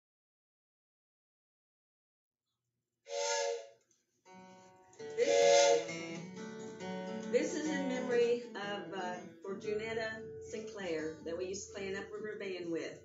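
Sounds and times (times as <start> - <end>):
acoustic guitar: 4.2 - 13.0.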